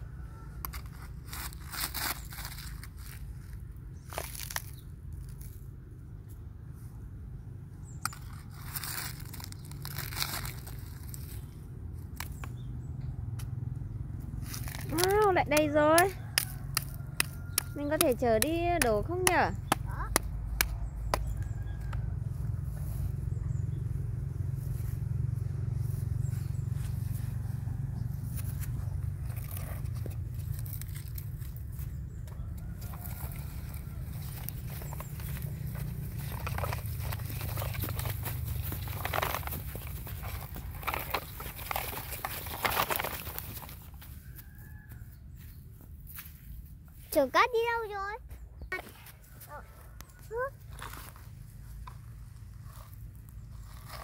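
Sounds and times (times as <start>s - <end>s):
toy truck rustling and knocking: 28.4s - 44.2s.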